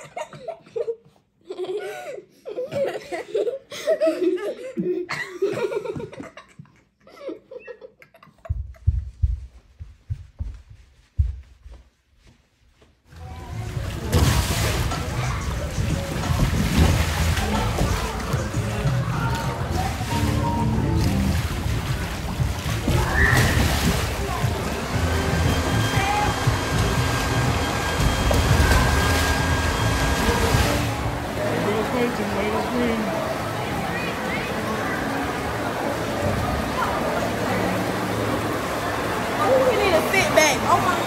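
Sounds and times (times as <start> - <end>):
water sloshing and splashing: 13.1 - 41.0
background music: 13.8 - 23.8.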